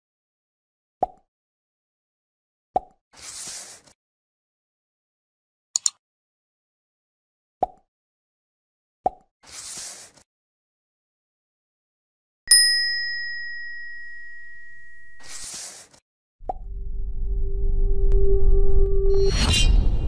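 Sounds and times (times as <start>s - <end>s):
mouse click: 5.8s - 6.0s
bell ding: 12.5s - 15.4s
rumble with held tone: 16.4s - 20.0s.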